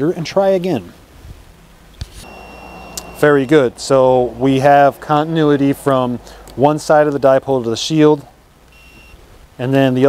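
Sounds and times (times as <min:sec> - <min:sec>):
continuity tester beep: 0:02.2 - 0:03.7, 0:08.7 - 0:09.2.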